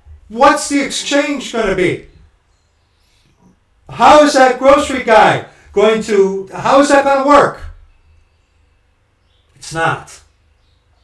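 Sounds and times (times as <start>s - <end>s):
man talking: 0.3s - 2.2s, 3.9s - 7.8s, 9.6s - 10.3s.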